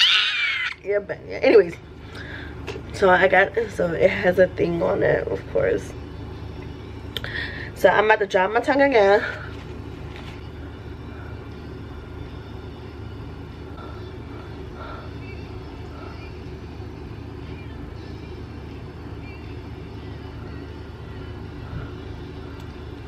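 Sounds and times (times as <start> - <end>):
steady low hum: 0.0 - 23.0.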